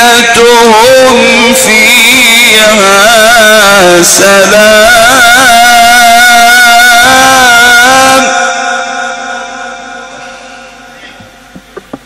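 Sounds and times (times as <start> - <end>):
man reciting melodically: 0.0 - 10.2.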